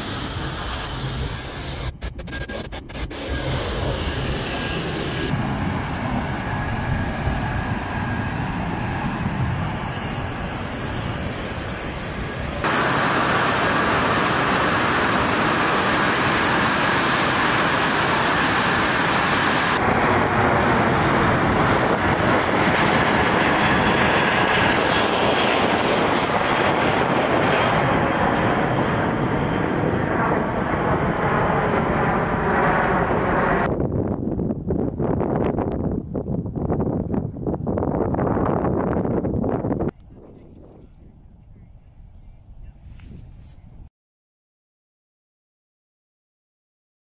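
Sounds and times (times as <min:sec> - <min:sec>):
jet engine roar: 0:00.0 - 0:34.2
wind buffeting microphone: 0:03.4 - 0:27.5, 0:33.3 - 0:43.9.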